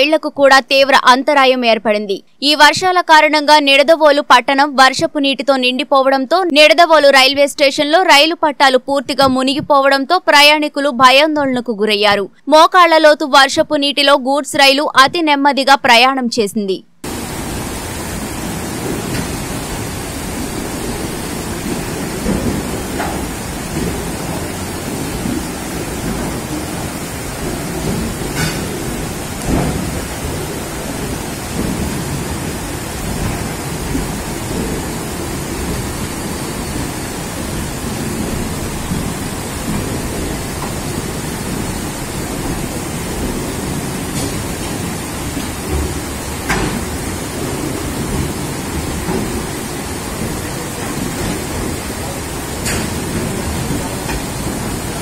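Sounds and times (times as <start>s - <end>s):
floodwater rushing and splashing: 17.0s - 55.0s
wagons rumbling: 17.0s - 55.0s.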